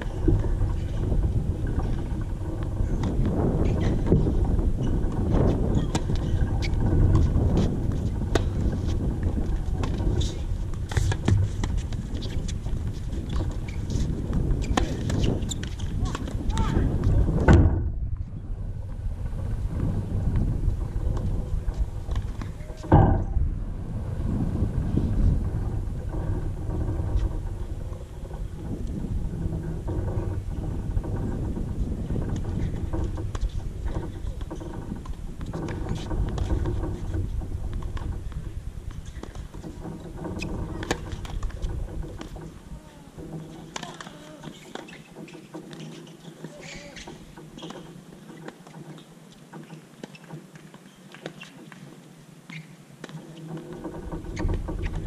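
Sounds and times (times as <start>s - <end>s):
wind buffeting microphone: 0.0s - 45.3s, 53.6s - 55.0s.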